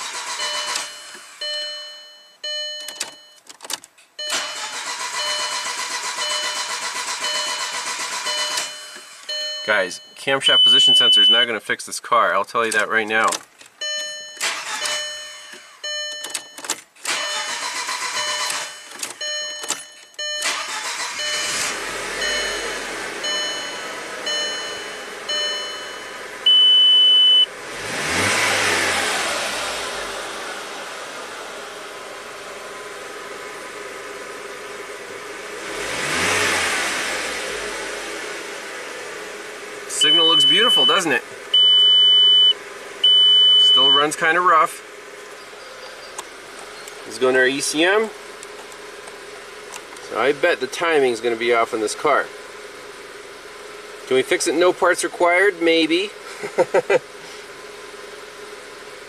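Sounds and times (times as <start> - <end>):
car engine cranking and starting: 0.0 - 59.0
short electronic beeps: 0.3 - 3.4, 4.2 - 11.5, 13.8 - 27.5, 40.0 - 44.1
engine revving: 20.4 - 59.0.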